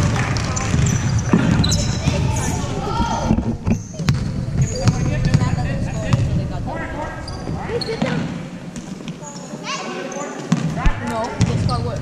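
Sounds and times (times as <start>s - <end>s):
basketball bouncing on hardwood floor: 0.1s - 2.3s, 4.1s - 5.5s
sneakers squeaking on floor: 0.3s - 6.3s, 7.2s - 10.8s, 11.4s - 12.0s.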